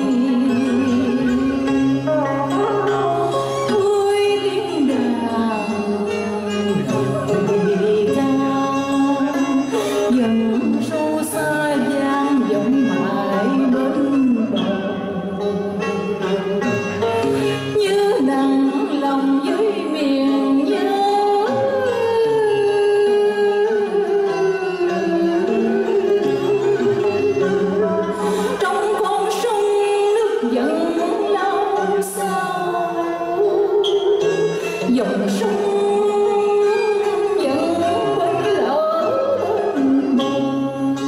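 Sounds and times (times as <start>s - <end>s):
woman singing into microphone: 0.0s - 16.5s, 17.2s - 27.2s, 27.8s - 41.0s
instrumental accompaniment: 0.0s - 41.0s.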